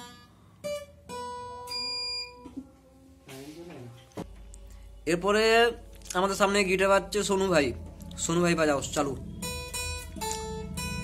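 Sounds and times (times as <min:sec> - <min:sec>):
acoustic guitar note ringing: 0:00.0 - 0:02.6, 0:08.7 - 0:11.0.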